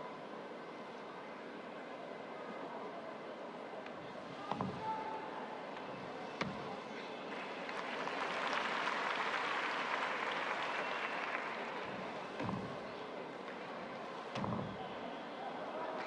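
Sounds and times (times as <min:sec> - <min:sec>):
crowd applause: 0:07.3 - 0:12.4
feet landing on balance beam: 0:12.3 - 0:12.9.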